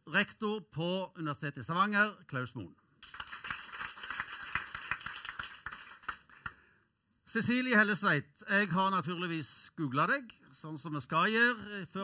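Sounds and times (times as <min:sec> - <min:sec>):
audience applauding: 0:03.0 - 0:06.6.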